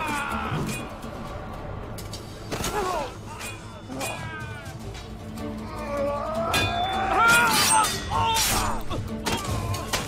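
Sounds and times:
drama score wailing melody: 0:00.0 - 0:10.0.

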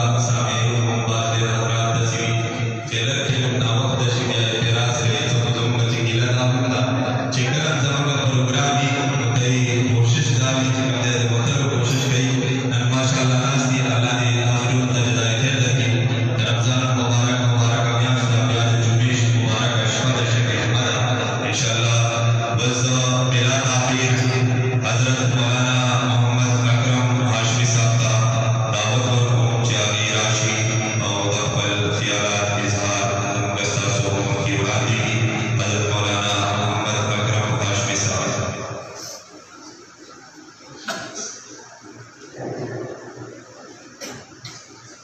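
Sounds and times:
man chanting a recitation: 0:00.0 - 0:45.0.

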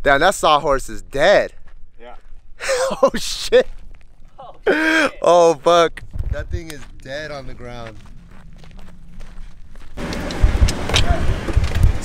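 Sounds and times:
faint outdoor ambience: 0:00.0 - 0:12.0
vehicle cabin noise off-road: 0:07.7 - 0:12.0.

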